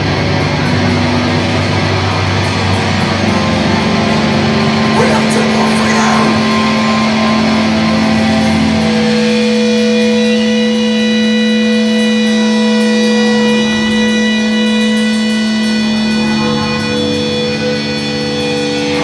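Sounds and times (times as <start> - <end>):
bass guitar low drone: 0.0 - 19.0.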